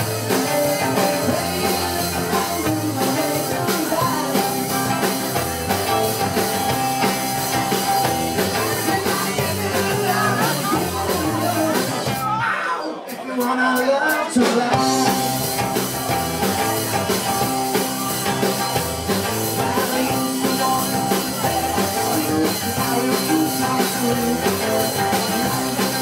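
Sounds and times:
person singing: 0.0 - 26.0
rock and roll band playing: 0.0 - 26.0.

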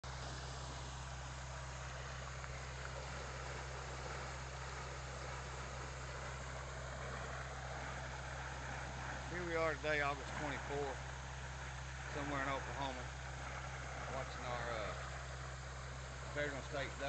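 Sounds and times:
water pump engine droning: 0.0 - 17.0.

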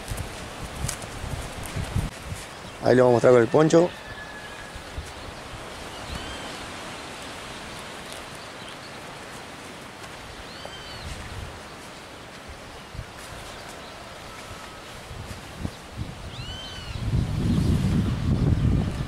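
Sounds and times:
windy rustling hiss: 0.0 - 19.0
bird chirps: 10.5 - 11.2, 16.3 - 17.1.

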